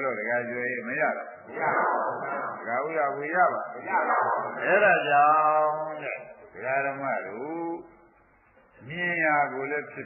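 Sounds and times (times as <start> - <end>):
person chanting: 1.5 - 7.9.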